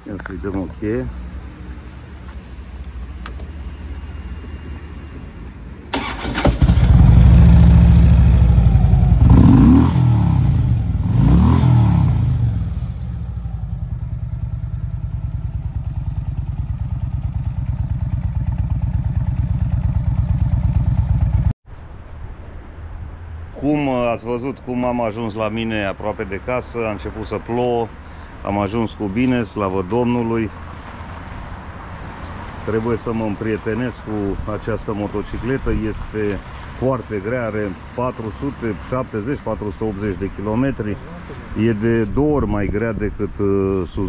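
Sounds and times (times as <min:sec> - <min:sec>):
motorcycle engine starting: 0:03.2 - 0:21.5
motorcycle engine revving: 0:06.0 - 0:21.5
motorcycle engine idling: 0:12.5 - 0:21.5.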